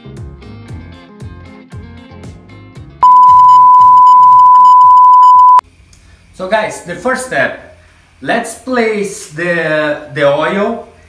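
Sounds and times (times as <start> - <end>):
steady test tone beep: 3.0 - 5.6.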